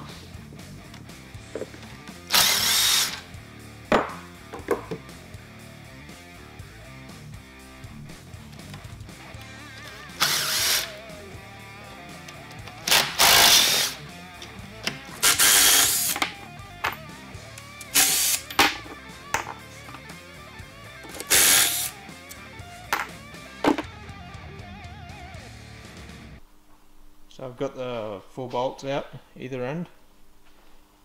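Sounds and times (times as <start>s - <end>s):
impact driver running: 2.3s - 3.3s, 9.8s - 11.0s, 12.6s - 14.0s, 15.2s - 16.3s, 17.9s - 18.5s, 21.0s - 21.9s
guitar music: 3.2s - 26.4s.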